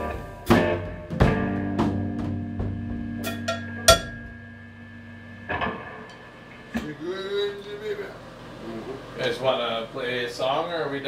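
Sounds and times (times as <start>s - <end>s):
electric guitar chord ringing out: 0.0s - 6.9s.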